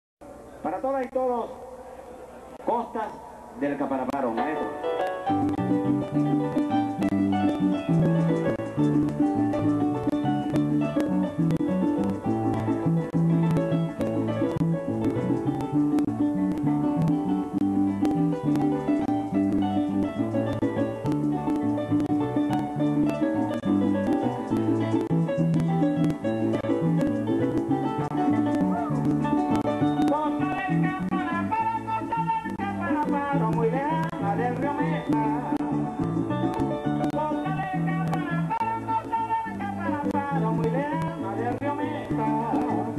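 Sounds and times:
harp plucked melody: 4.4 - 31.5, 32.5 - 38.6
bass line: 5.1 - 42.9
maracas shaking: 5.3 - 16.0, 16.8 - 42.9
man singing into a microphone: 30.0 - 36.1, 37.0 - 42.9.

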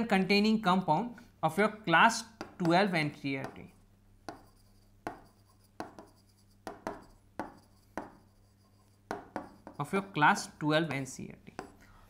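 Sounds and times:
stylus tapping on glass: 4.3 - 8.2, 9.1 - 9.8.

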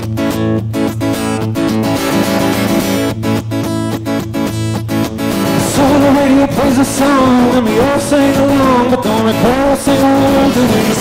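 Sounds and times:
acoustic guitar strumming: 0.0 - 11.0
man singing: 5.4 - 11.0.

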